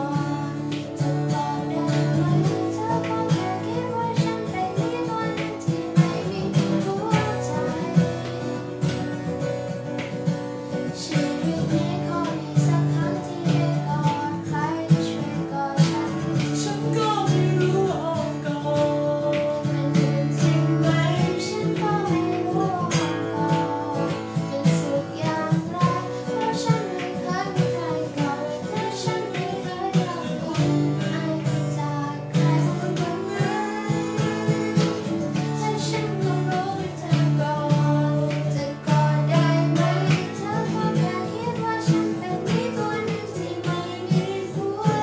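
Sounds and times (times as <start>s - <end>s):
acoustic guitar strumming: 0.0s - 45.0s
woman singing: 0.0s - 45.0s.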